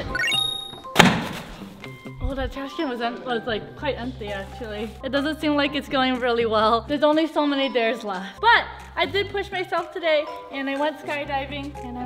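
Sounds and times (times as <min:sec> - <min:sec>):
background music: 0:00.0 - 0:12.0
phone thunk in trash can: 0:00.9 - 0:01.6.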